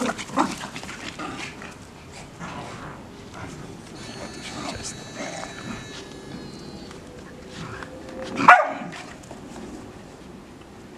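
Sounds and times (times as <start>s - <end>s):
small dogs playing: 0.0s - 9.8s
dog barking sharply: 8.4s - 8.9s.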